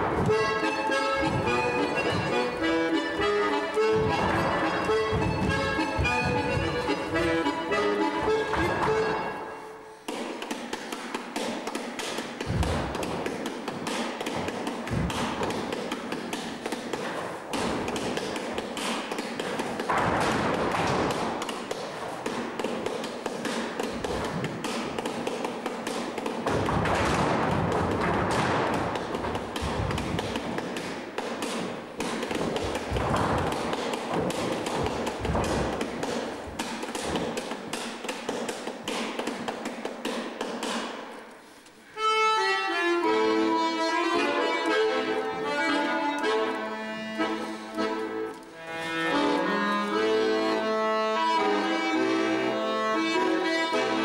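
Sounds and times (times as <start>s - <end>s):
heavy thuds: 0.0s - 9.5s, 12.2s - 40.9s
shoes tapping on wooden floor: 0.0s - 41.8s, 43.0s - 54.0s.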